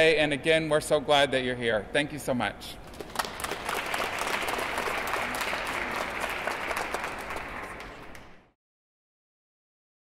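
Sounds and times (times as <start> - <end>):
audience applauding: 2.9 - 8.5.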